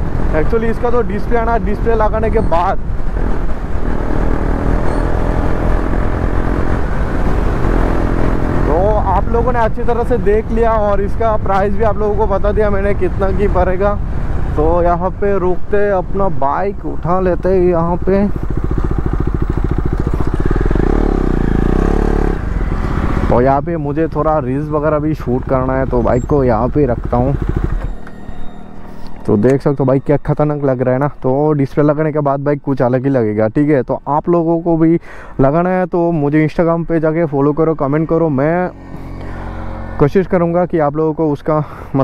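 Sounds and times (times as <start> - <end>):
motorcycle engine cruising: 0.0 - 29.8, 36.6 - 41.4
wind and road noise: 0.0 - 42.0.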